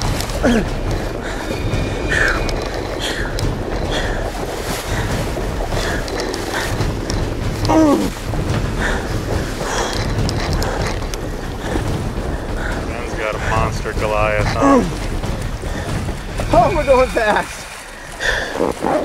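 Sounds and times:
water rushing and splashing: 0:00.0 - 0:19.0
wind buffeting microphone: 0:00.0 - 0:19.0.

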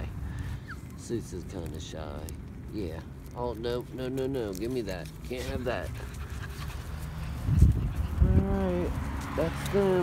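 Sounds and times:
puppy breathing and sniffing: 0:04.6 - 0:10.0.

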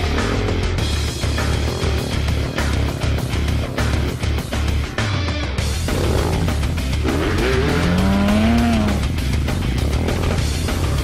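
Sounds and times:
motorcycle engine revving: 0:00.0 - 0:11.0
rock music with steady beat: 0:00.0 - 0:11.0.

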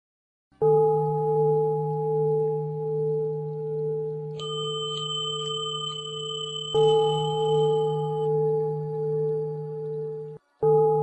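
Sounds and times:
bowl bell ringing: 0:00.6 - 0:11.0
higher-pitched bell ringing: 0:04.4 - 0:08.9.

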